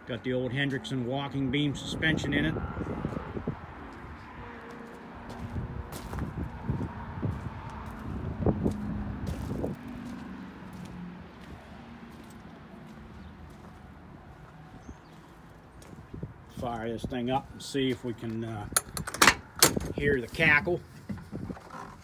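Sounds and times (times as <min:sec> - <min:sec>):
footsteps on gravel: 0:03.0 - 0:18.6.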